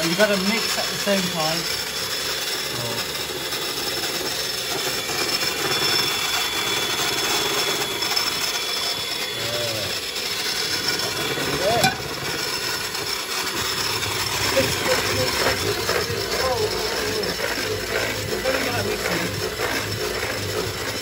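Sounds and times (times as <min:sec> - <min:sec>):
electric hand mixer whisking batter: 0:00.0 - 0:21.0.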